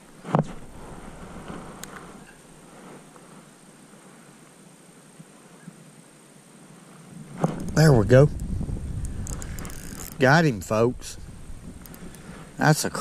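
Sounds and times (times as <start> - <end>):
faint wind: 0.0 - 13.0
water noise: 7.1 - 13.0.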